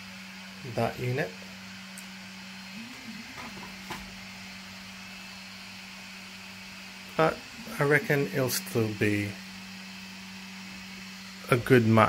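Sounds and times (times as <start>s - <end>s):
room tone hum and hiss: 0.0s - 12.0s.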